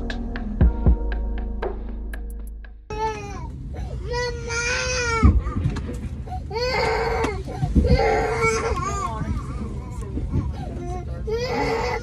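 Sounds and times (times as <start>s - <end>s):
child crying in high wails: 2.9s - 5.4s, 6.5s - 9.0s, 11.2s - 12.0s
low hum of aircraft cabin: 2.9s - 12.0s.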